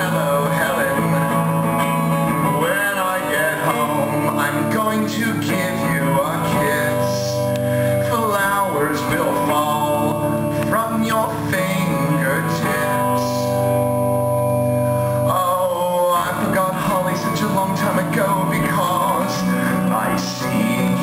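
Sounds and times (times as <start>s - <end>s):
man singing: 0.0s - 14.0s, 14.9s - 21.0s
solo electric guitar: 0.0s - 21.0s.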